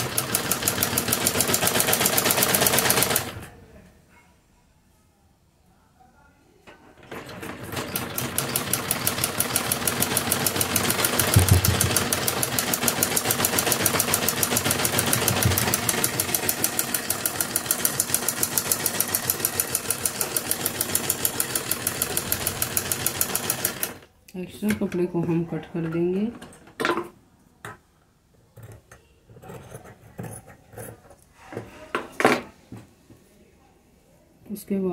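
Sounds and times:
sewing machine stitching: 0.0s - 3.5s, 6.7s - 24.0s.

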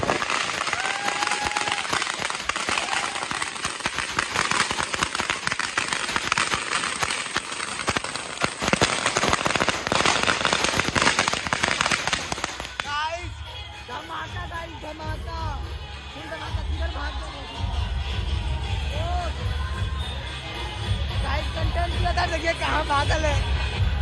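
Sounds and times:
firecrackers crackling: 0.0s - 17.3s.

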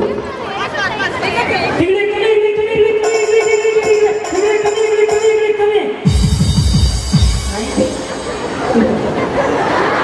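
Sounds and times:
women chattering and calling out: 0.0s - 6.0s
music: 2.9s - 9.2s.

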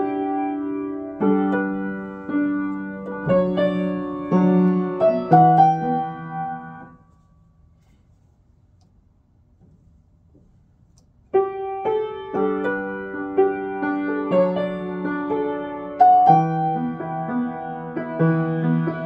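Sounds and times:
grand piano chords: 0.0s - 7.8s, 11.3s - 19.0s.

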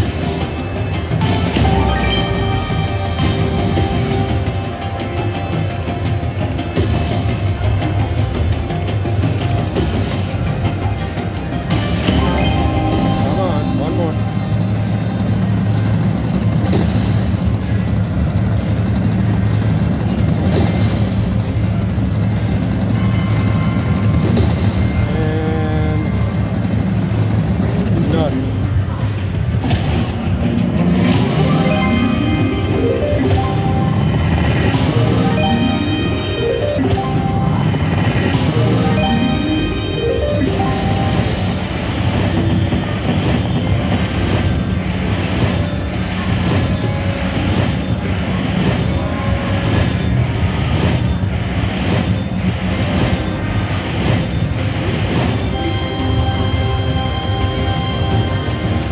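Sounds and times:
low casino hum: 0.0s - 58.9s
slot machine music and effects: 0.0s - 58.9s
chime-like tone: 1.2s - 5.0s, 11.6s - 15.8s, 31.0s - 58.9s.

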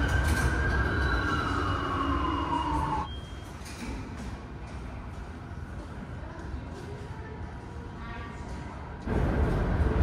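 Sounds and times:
subway train rumbling: 0.0s - 10.0s.

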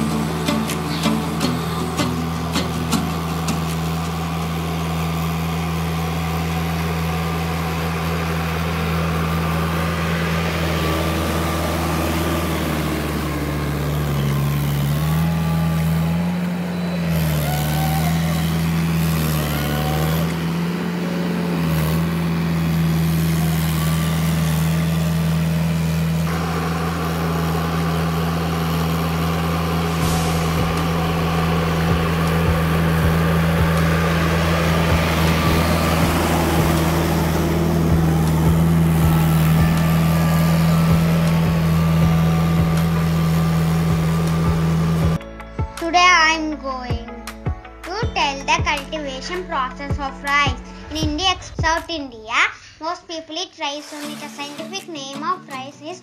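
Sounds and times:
diesel tractor engine droning: 0.0s - 56.0s.

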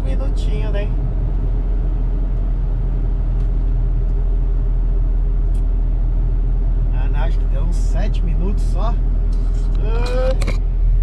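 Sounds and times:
truck engine and road noise: 0.0s - 11.0s.

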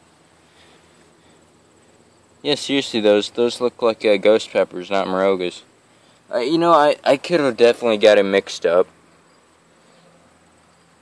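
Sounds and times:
faint hiss: 0.0s - 11.0s
insects chirping high tone: 0.0s - 11.0s.

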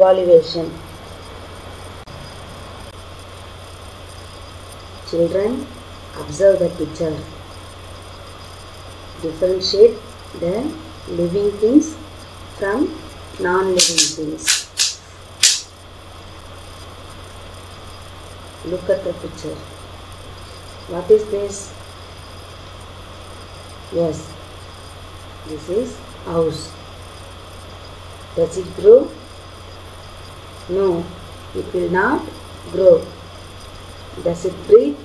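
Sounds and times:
background hiss: 0.0s - 35.0s
low electrical hum: 0.0s - 35.0s
brief click: 13.8s - 15.7s
short sharp hiss: 13.8s - 15.7s.

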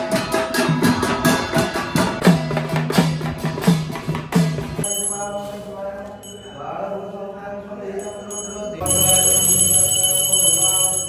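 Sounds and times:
person chanting mantra: 4.9s - 11.0s.

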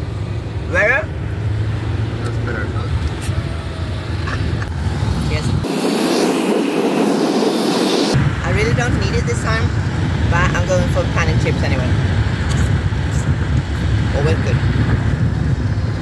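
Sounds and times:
road and engine rumble in van: 0.0s - 16.0s.

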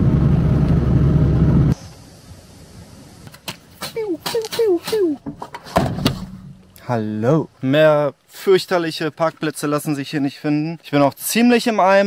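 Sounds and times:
vehicle engine and tyre noise: 0.0s - 3.8s
quiet outdoor background: 0.0s - 12.0s.

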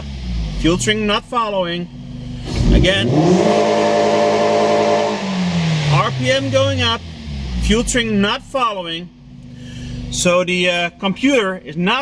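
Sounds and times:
car engine revving: 0.0s - 10.9s.

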